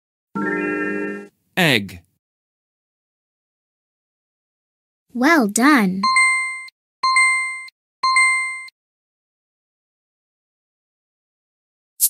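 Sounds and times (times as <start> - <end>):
electronic ding chimes: 6.1 - 8.7.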